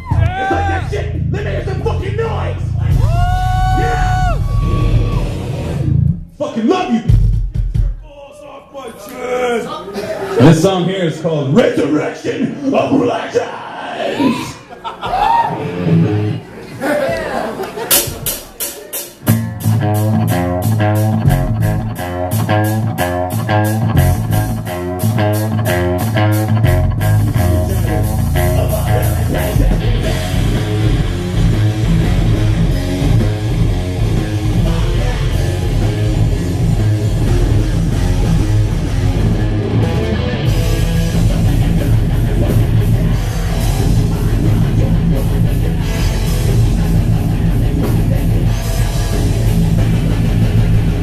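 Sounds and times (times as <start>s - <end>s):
distorted electric guitar riff: 0.0s - 6.2s, 15.5s - 16.5s, 19.2s - 51.0s
heavy metal band playing: 0.0s - 6.2s, 17.9s - 51.0s
heavy low drums: 0.0s - 8.3s, 17.9s - 51.0s
sharp rhythmic hits: 17.9s - 51.0s.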